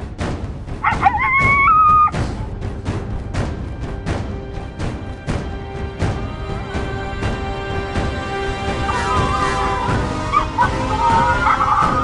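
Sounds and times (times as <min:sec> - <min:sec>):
dog howling: 0:08.8 - 0:12.0.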